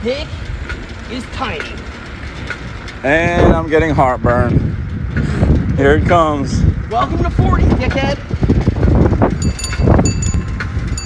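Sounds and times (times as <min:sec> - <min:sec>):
bike rolling and rattling: 0:00.0 - 0:11.0
wind on microphone: 0:03.2 - 0:11.0
bicycle bell ringing: 0:09.3 - 0:11.0.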